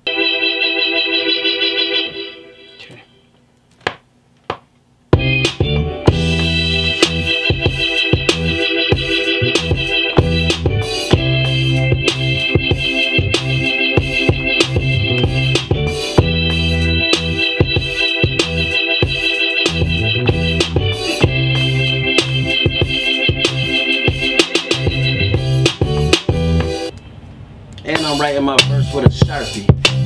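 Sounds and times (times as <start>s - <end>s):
electronic organ chord: 0.0s - 3.3s, 5.2s - 26.9s
hip-hop beat: 5.1s - 27.0s, 27.8s - 30.0s
bass line: 5.2s - 26.9s, 27.9s - 30.0s.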